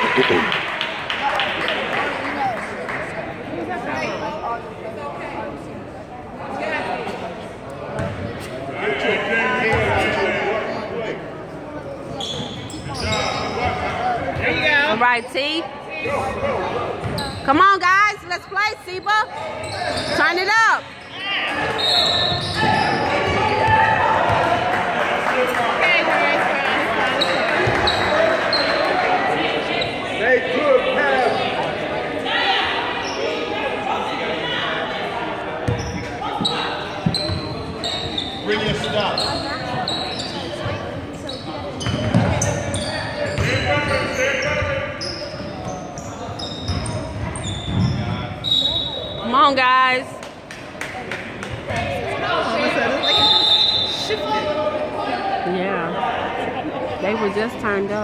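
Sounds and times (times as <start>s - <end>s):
spectators talking: 0.0s - 58.0s
sneakers squeaking: 3.8s - 4.7s, 7.9s - 8.7s, 11.9s - 24.6s, 26.9s - 30.2s, 32.5s - 33.7s, 35.6s - 49.6s
referee's whistle: 21.6s - 23.1s, 46.4s - 49.4s, 52.8s - 54.2s.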